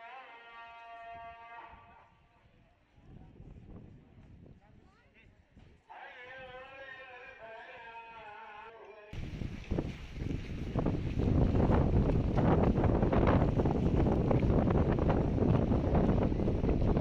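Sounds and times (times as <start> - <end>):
strong wind buffeting microphone: 1.8 - 5.7, 9.2 - 17.0.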